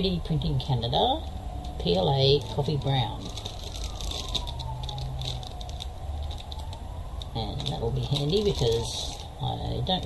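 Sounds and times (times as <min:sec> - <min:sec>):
plastic bag crinkling: 0:01.6 - 0:10.0.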